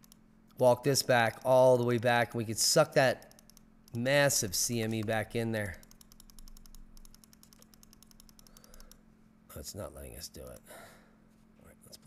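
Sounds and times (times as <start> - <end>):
computer mouse clicks: 0.0 - 0.6, 3.2 - 4.0, 4.8 - 5.2, 5.8 - 9.0
faint steady hum: 0.0 - 12.0.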